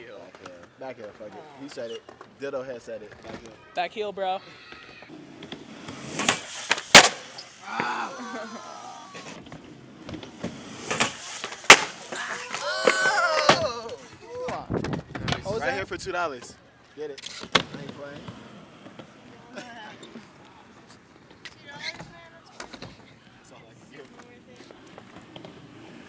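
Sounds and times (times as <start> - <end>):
skateboard smacking the ground: 4.8 - 15.6, 17.2 - 19.7.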